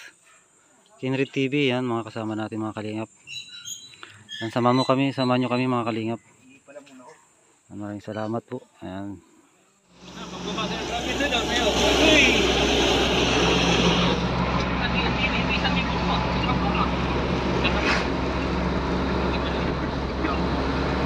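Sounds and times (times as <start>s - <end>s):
road noise: 9.8s - 21.0s
truck engine hum: 9.9s - 21.0s.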